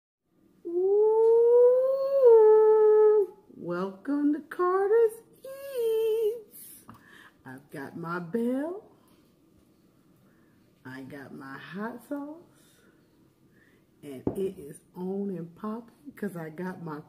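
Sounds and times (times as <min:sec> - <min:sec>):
woman humming: 0:00.6 - 0:03.6.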